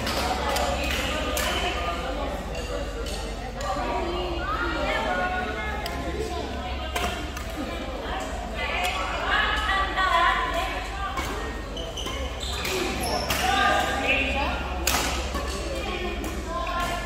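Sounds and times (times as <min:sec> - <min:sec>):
voices in echoing hall: 0:00.0 - 0:17.0.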